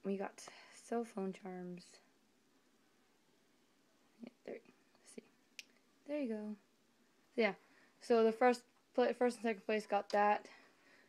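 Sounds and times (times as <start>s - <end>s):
faint sharp clicks: 5.6s - 5.8s.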